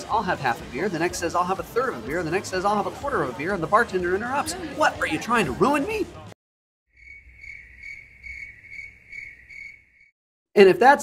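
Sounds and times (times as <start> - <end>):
crickets chirping: 6.9 - 10.1.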